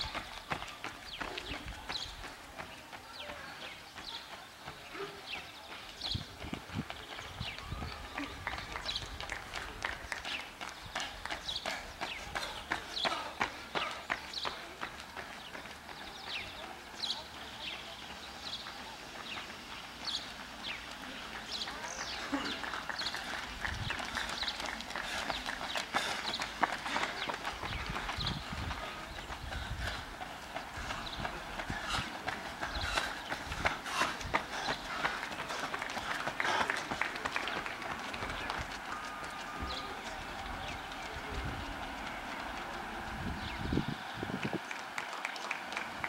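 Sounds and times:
small birds chirping: 0.0s - 36.6s
runners' footsteps on asphalt: 0.0s - 46.0s
spectators' voices: 0.0s - 46.0s.

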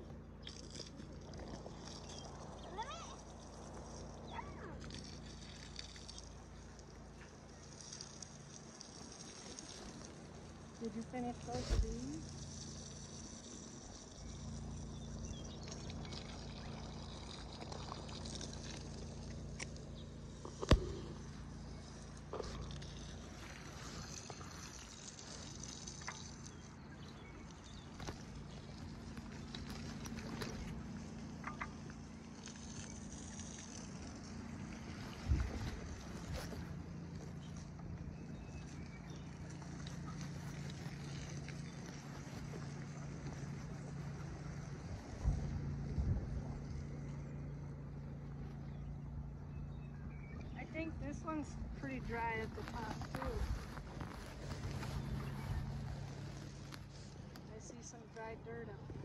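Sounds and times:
steady low hum: 0.0s - 59.0s
microphone handling rubbing: 20.4s - 25.4s, 50.8s - 57.6s.

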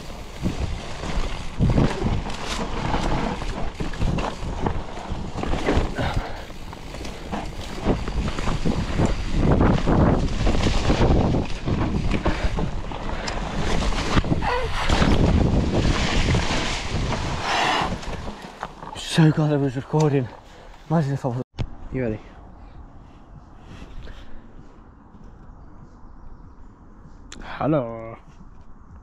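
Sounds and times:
bike knocks and rattles: 0.0s - 19.2s
wind buffeting microphone: 0.0s - 20.4s, 21.7s - 29.0s
tyres rolling over dirt: 0.0s - 21.2s.

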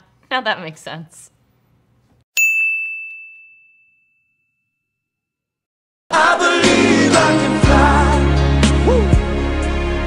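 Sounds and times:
bell-like ding: 2.4s - 5.1s.

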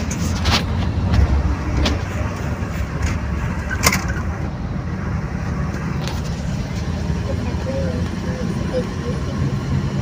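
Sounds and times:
bus engine rumbling: 0.0s - 10.0s.

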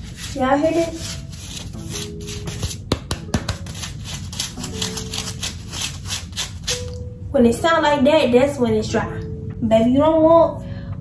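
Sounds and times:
fingernails scratching dried coating: 0.0s - 6.9s.

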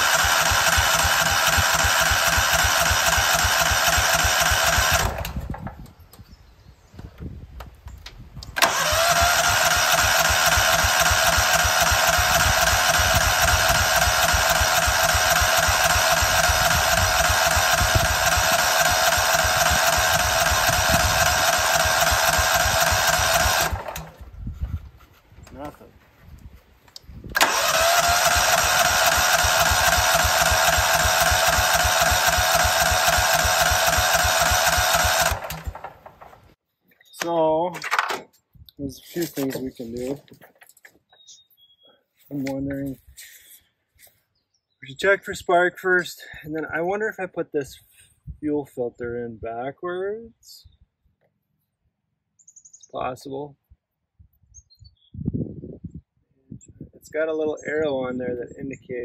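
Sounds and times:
engine cranking without starting: 0.0s - 5.8s, 8.4s - 24.2s, 27.3s - 36.6s
starter motor whine: 0.0s - 5.8s, 8.4s - 24.3s, 27.3s - 36.6s.

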